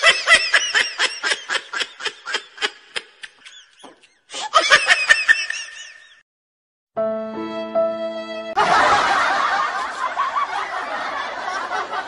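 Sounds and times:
burst of laughter: 8.6s - 12.0s.

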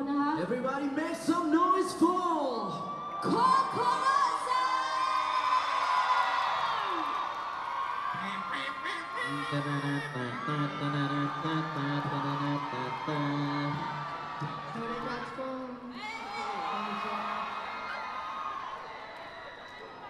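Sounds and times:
crowd screaming and cheering: 0.7s - 20.0s.

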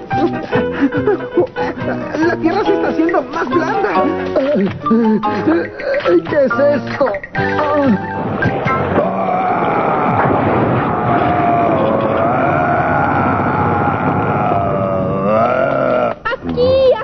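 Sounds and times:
dramatic music: 0.0s - 12.0s
wavering pitched groan: 9.0s - 16.3s.

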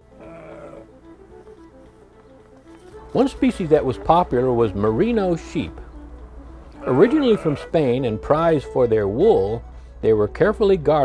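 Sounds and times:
soft background music: 0.0s - 11.0s
sheep bleating: 0.1s - 1.0s, 6.7s - 7.8s.

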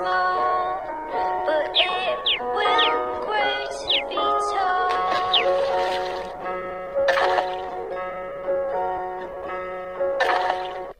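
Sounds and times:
person singing nursery rhyme: 0.0s - 5.8s
backing music: 0.0s - 10.9s.

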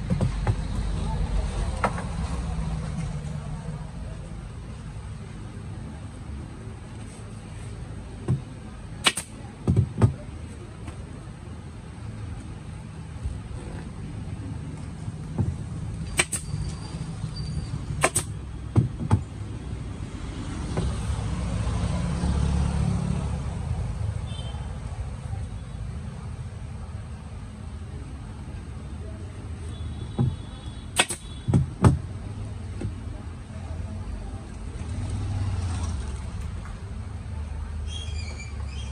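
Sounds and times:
knocks on wooden table: 30.2s - 30.4s.

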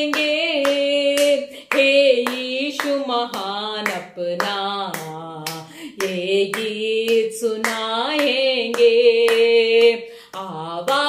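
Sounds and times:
hands clapping in time: 0.0s - 11.0s
woman singing unaccompanied: 0.0s - 11.0s.

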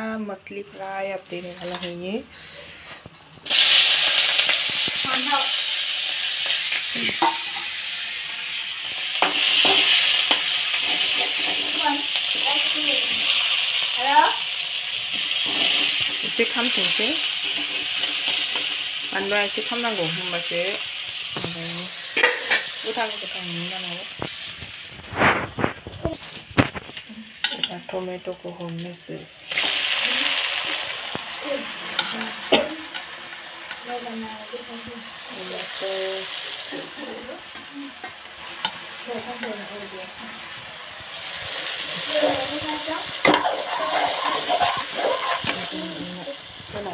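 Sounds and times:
food frying in a pan: 0.0s - 46.9s
vegetables sizzling in a wok: 0.0s - 46.9s
metal spoon scraping a pan: 6.1s - 8.1s, 9.0s - 13.0s, 15.1s - 19.4s, 22.0s - 23.1s, 31.9s - 33.8s, 41.9s - 46.4s.

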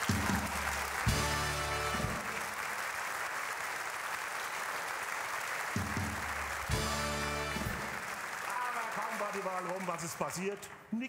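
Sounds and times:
audience applauding: 0.0s - 10.8s
band playing short chords: 6.7s - 7.9s.

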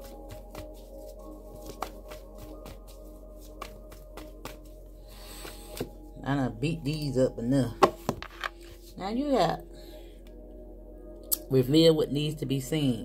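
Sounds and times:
soft ambient music: 0.0s - 13.0s
cards being shuffled: 0.4s - 4.6s.

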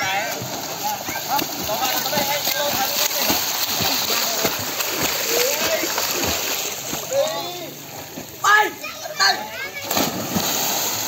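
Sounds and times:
water splashing from kicking: 0.0s - 7.2s, 9.8s - 11.0s.

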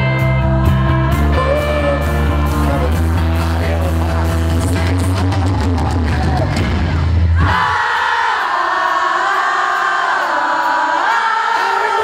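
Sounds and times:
crowd singing along: 7.3s - 12.0s.

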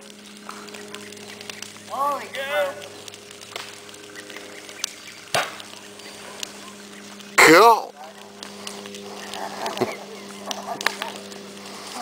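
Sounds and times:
steady low hum: 0.0s - 12.0s
sharp pop: 5.3s - 5.6s.

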